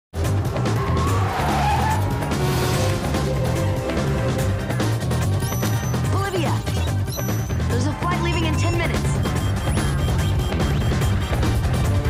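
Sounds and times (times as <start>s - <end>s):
car sound effects: 0.2s - 12.0s
loud action music: 0.2s - 12.0s
tyre screech: 0.6s - 2.7s.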